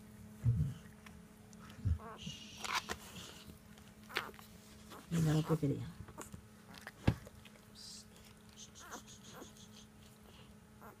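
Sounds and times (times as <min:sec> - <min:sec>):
low steady hum: 0:00.0 - 0:11.0
puppies squeaking: 0:04.1 - 0:06.8, 0:08.5 - 0:11.0.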